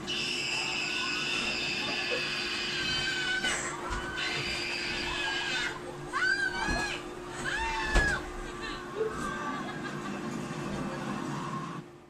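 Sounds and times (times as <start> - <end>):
steady hum: 0.0 - 12.0
boy screaming: 2.6 - 8.2.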